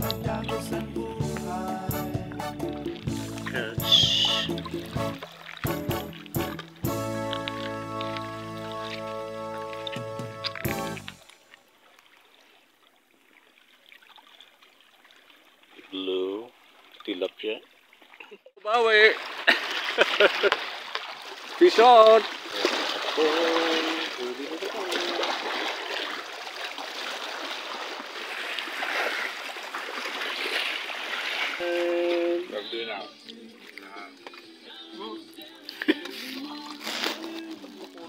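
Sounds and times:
water lapping among rocks: 0:02.9 - 0:38.0
waves splashing over rocks: 0:18.8 - 0:35.0.

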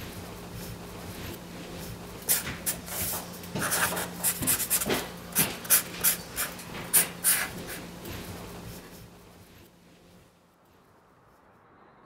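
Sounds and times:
marker scratching on paper: 0:02.3 - 0:07.8.

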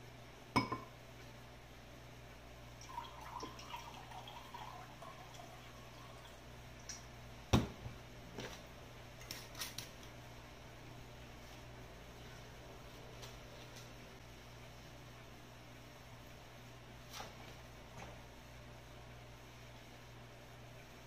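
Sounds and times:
low steady hum: 0:00.0 - 0:21.0
glassware clinking on table: 0:00.6 - 0:00.9
liquid poured into glass: 0:02.8 - 0:06.4.

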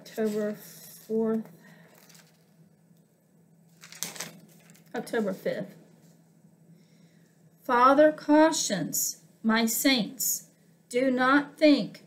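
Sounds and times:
woman speaking: 0:00.0 - 0:01.5, 0:04.9 - 0:05.8, 0:07.6 - 0:12.0
rustling: 0:00.1 - 0:02.7, 0:03.7 - 0:05.4.

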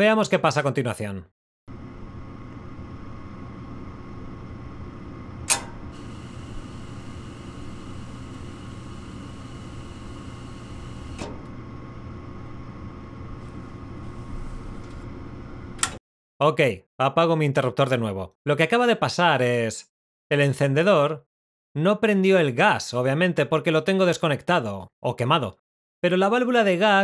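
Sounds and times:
furnace motor humming: 0:01.7 - 0:16.0
gas valve clicking: 0:05.4 - 0:06.6, 0:15.8 - 0:16.0
gas hissing: 0:05.4 - 0:16.0.

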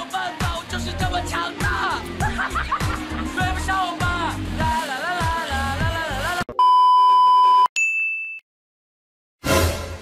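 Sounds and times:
song with singing: 0:00.0 - 0:06.5
short high-pitched beep: 0:06.5 - 0:08.4.

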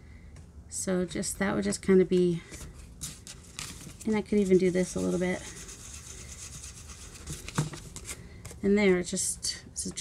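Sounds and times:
fingertip rubbing on paper: 0:04.1 - 0:07.5.

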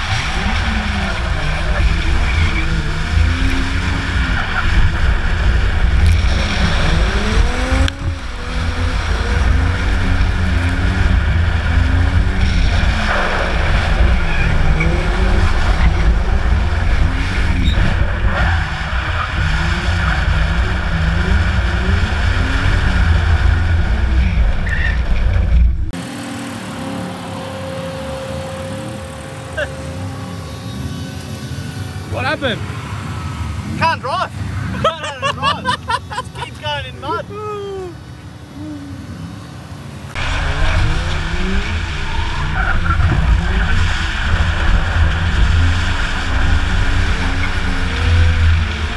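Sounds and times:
car engine revving: 0:00.0 - 0:37.2, 0:38.0 - 0:48.9.

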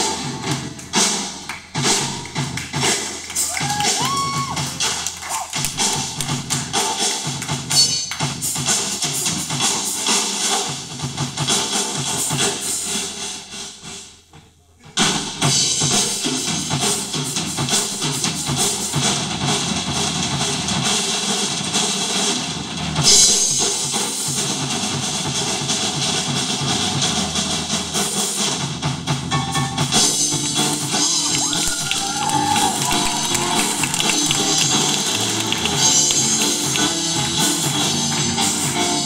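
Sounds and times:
live band playing: 0:00.0 - 0:10.7, 0:29.1 - 0:39.0
drum kit: 0:00.0 - 0:39.0.

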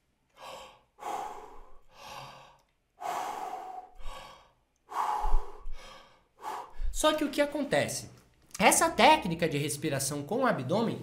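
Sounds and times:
man breathing deeply: 0:00.3 - 0:07.0.

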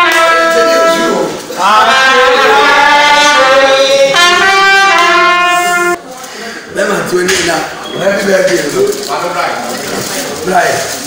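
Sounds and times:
trumpet holding long notes: 0:00.0 - 0:06.0.

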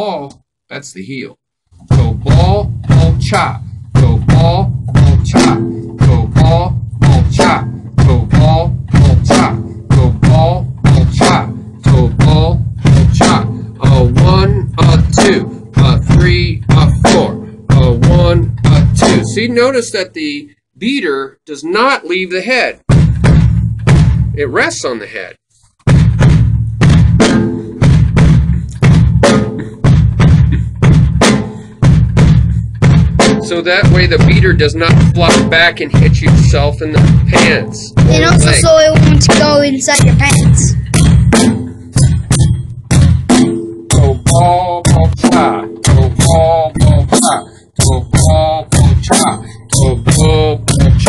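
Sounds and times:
bass drum strokes: 0:01.8 - 0:19.7, 0:22.9 - 0:24.6, 0:25.9 - 0:47.2
snare drum chop: 0:01.9 - 0:19.4, 0:25.9 - 0:36.4, 0:37.0 - 0:42.5, 0:43.3 - 0:51.0.

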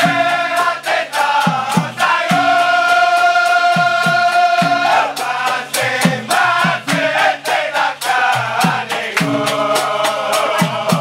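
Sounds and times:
men singing in unison: 0:00.0 - 0:11.0
percussion beats: 0:00.0 - 0:11.0.

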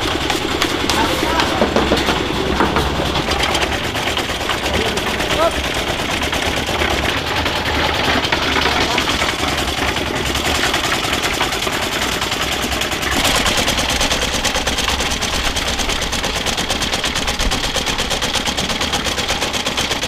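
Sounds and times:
concrete mixer running: 0:00.0 - 0:20.0.

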